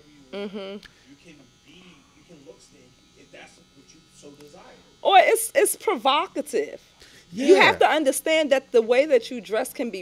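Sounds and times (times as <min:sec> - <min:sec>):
soft low conversation: 0:00.0 - 0:05.3, 0:07.2 - 0:08.0
faint electrical buzz: 0:00.0 - 0:10.0.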